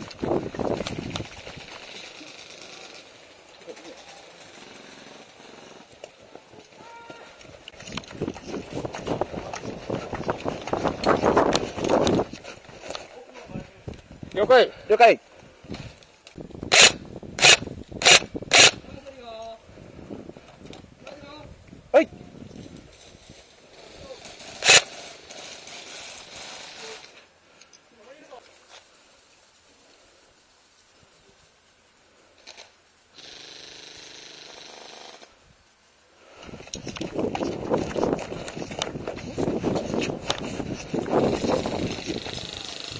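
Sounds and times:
footsteps in dry grass: 0.0s - 4.9s, 5.5s - 14.3s, 35.8s - 42.9s
cloth rubbing against microphone: 7.5s - 13.7s, 35.5s - 42.9s
airsoft gun full-auto burst: 24.5s - 26.8s.

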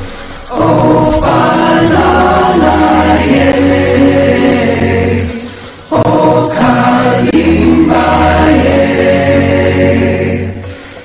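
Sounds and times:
choir holding chant-like notes: 0.0s - 11.0s
steady low drone: 0.0s - 11.0s.

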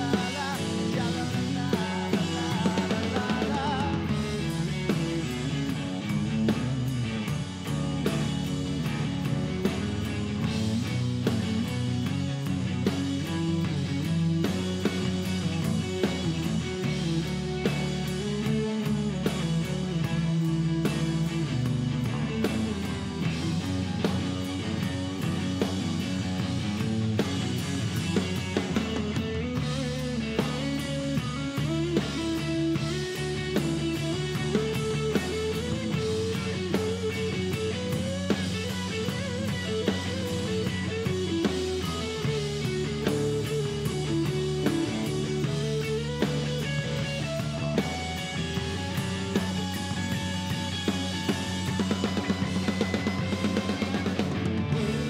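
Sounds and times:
bass guitar: 0.0s - 55.0s
drum kit: 0.0s - 55.0s
electric guitar: 0.0s - 55.0s.

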